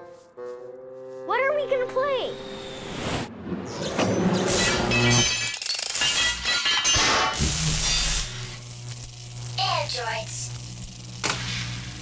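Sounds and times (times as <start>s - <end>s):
hissing effects: 7.2s - 12.0s.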